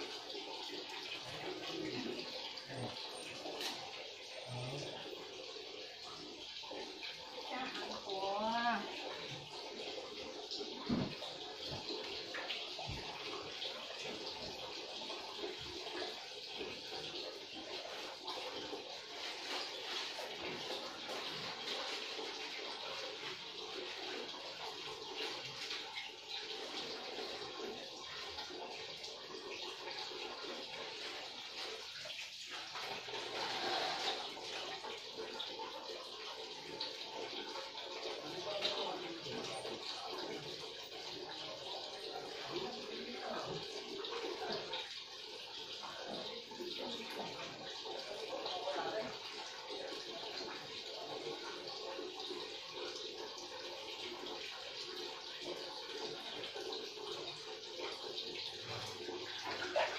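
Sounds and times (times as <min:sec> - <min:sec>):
shower water running and splashing: 0:00.0 - 0:59.9.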